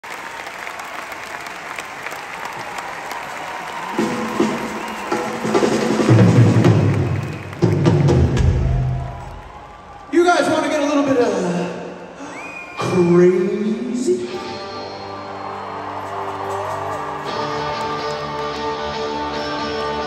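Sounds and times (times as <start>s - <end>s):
crowd applauding and cheering: 0.0s - 11.2s, 12.0s - 20.0s
live rock band with drums: 3.7s - 9.6s.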